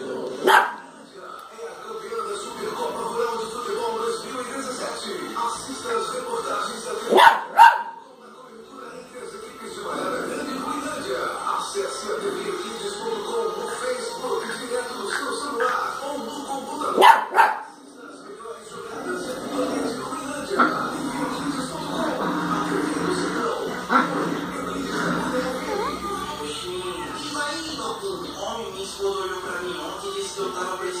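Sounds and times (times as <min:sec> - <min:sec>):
television in background: 0:00.0 - 0:31.0
small dog barking: 0:00.4 - 0:00.8, 0:07.1 - 0:08.0, 0:17.0 - 0:17.8.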